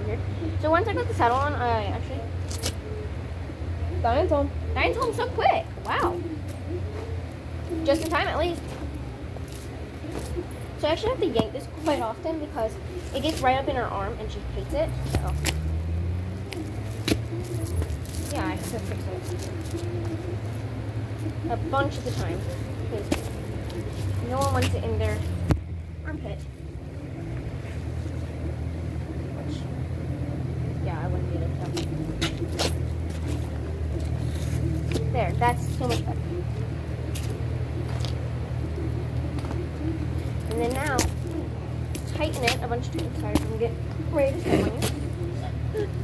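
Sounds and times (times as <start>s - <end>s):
vehicle engine running: 0.0s - 46.0s
leather strap clicks and rustles: 15.0s - 20.6s.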